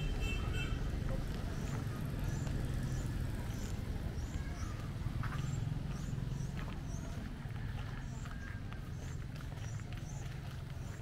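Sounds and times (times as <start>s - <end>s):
low rumble of traffic: 0.0s - 11.0s
small birds chirping: 0.5s - 11.0s.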